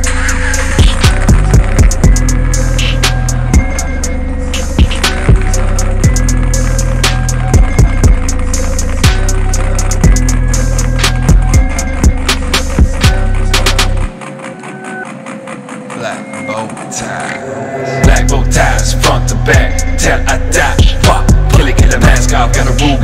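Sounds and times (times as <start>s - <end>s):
deep held bass notes: 0.0s - 14.2s, 15.9s - 23.0s
sharp percussion ticks: 0.0s - 17.4s, 18.0s - 23.0s
synth melody: 0.0s - 23.0s.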